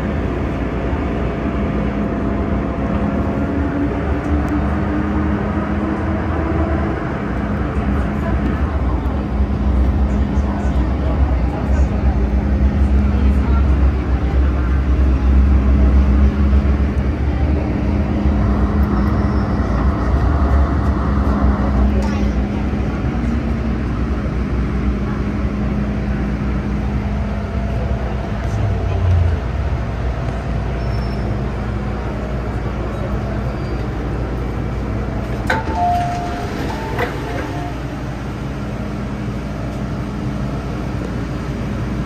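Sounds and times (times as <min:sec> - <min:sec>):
train motor humming: 0:00.0 - 0:42.0
train wheels rumbling: 0:00.0 - 0:42.0.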